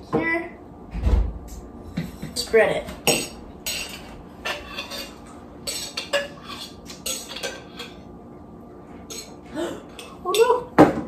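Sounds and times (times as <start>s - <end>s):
knife scraping inside glass jar: 3.7s - 8.0s.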